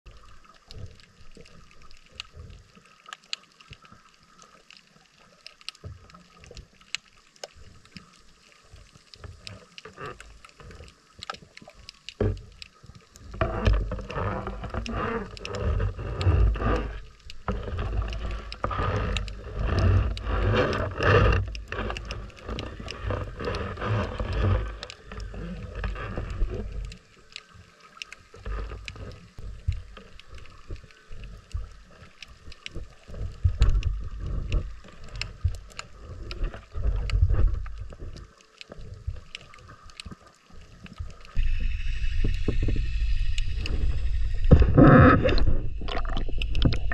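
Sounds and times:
muffled water surges: 0.1 - 46.9.

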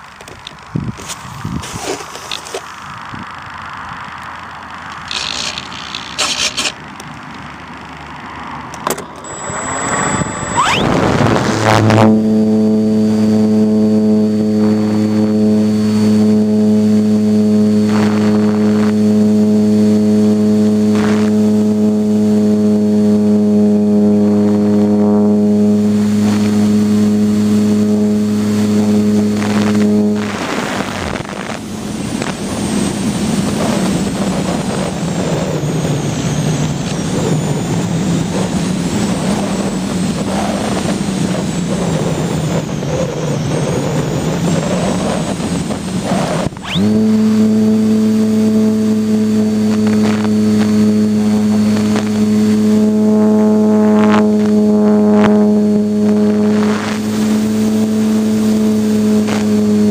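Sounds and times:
electric motor and propeller: 0.0 - 59.9
wind rushing over airframe: 9.2 - 19.1, 22.8 - 48.0.

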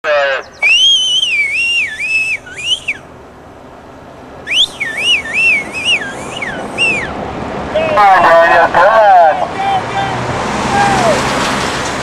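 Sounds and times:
brief falling call: 0.4 - 3.0, 4.5 - 8.4
loud shrill warbling whistle: 0.6 - 3.0, 4.5 - 7.2.

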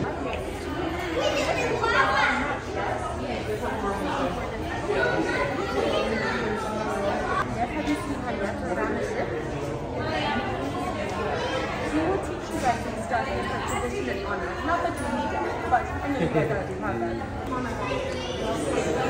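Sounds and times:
indistinct chatter of people: 0.0 - 19.0.

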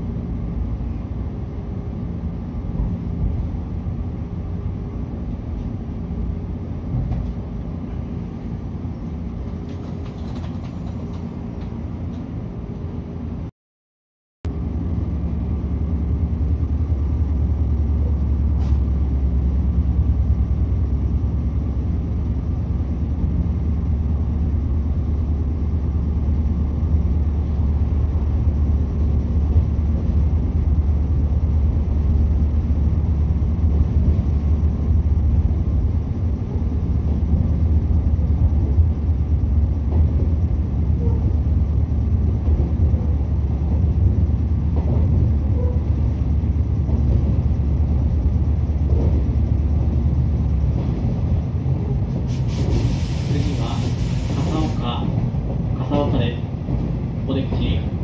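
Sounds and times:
train interior rumble: 0.0 - 13.5, 14.4 - 58.0.

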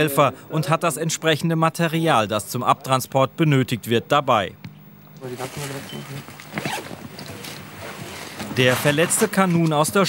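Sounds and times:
zipper being pulled open: 6.4 - 9.3.

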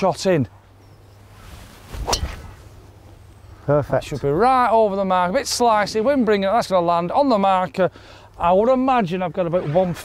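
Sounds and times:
golf club swish: 1.2 - 2.9
clubhead striking golf ball: 2.0 - 2.6.

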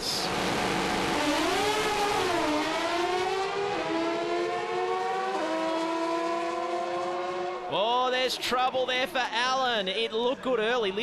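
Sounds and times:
motorcycle engine accelerating: 0.3 - 7.7.

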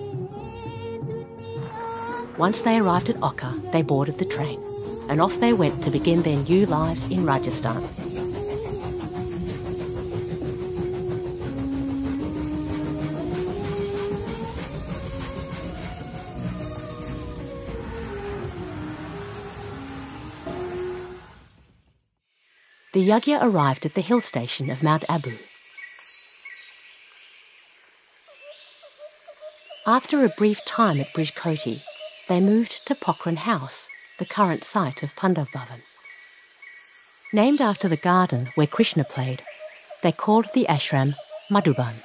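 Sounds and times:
train clattering and hissing: 1.8 - 21.7, 23.4 - 26.1, 29.8 - 42.0
insect drone: 4.4 - 21.5, 22.2 - 42.0
bird calling: 35.4 - 42.0.

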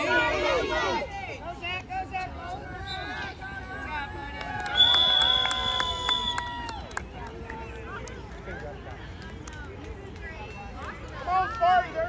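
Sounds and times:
spectators cheering and clapping: 3.9 - 12.0.

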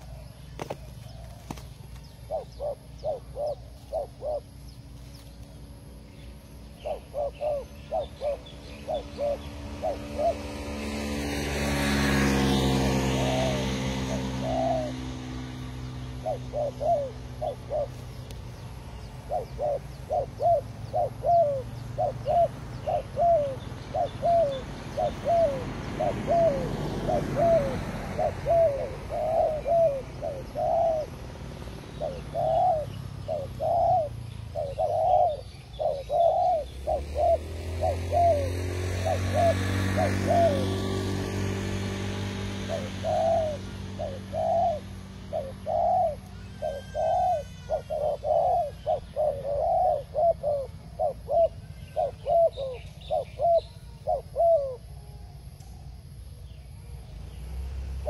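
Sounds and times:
doves cooing: 0.0 - 56.2
low engine hum: 0.0 - 58.0.

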